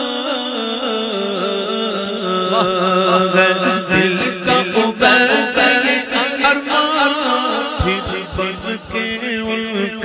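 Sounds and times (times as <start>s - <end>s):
held vocal drone: 0.0s - 10.0s
man singing unaccompanied: 0.0s - 10.0s.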